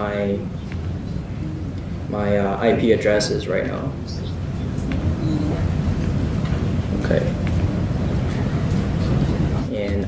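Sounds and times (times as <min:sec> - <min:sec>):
low rumble of microphone noise: 0:00.0 - 0:10.0.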